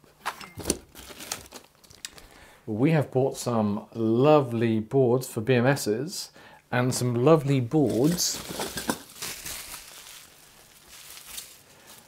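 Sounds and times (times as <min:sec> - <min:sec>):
bubble wrap rustling: 0:00.7 - 0:02.2, 0:07.8 - 0:12.0.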